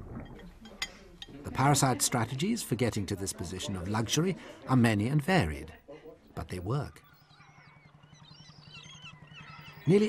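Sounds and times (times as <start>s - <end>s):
gull calls: 6.9s - 10.0s.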